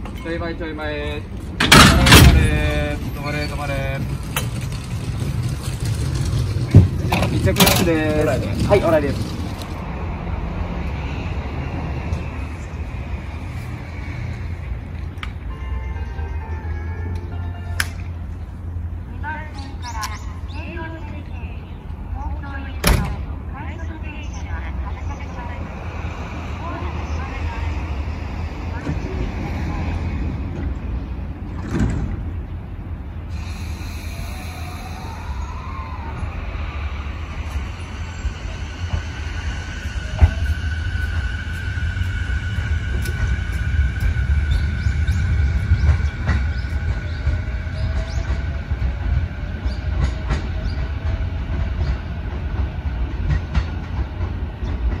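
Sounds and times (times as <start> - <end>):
train low rumble: 0.0 - 55.0.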